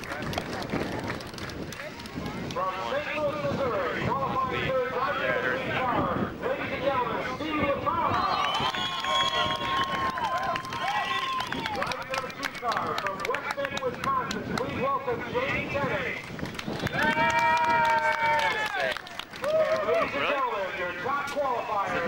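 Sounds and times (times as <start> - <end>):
people talking: 0.0 - 10.5, 11.6 - 16.2, 16.8 - 22.0
announcer over public address: 2.6 - 8.3, 11.9 - 16.2, 20.0 - 22.0.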